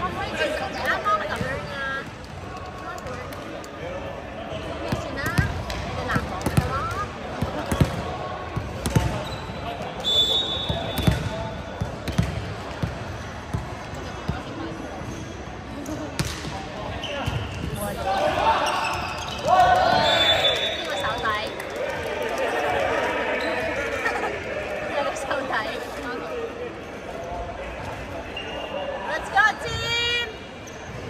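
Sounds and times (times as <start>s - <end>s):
volleyball smacks echoing in hall: 4.8s - 15.0s, 15.7s - 23.2s
players shouting: 17.8s - 25.3s.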